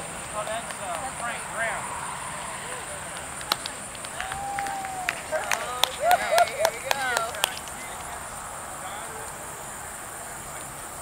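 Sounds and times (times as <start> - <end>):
steady high-pitched hiss: 0.0 - 11.0
wordless calls of onlookers: 0.0 - 11.0
sharp claps or clicks: 0.6 - 1.1, 3.1 - 8.2.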